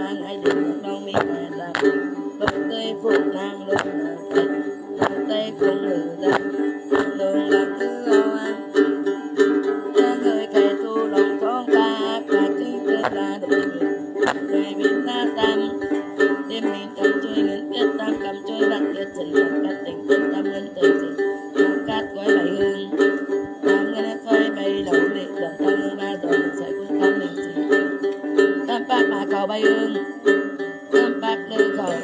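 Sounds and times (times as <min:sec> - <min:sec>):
plucked lute pattern: 0:00.0 - 0:32.0
woman singing: 0:00.0 - 0:32.0
sharp percussive strikes: 0:00.4 - 0:10.1, 0:13.0 - 0:16.5.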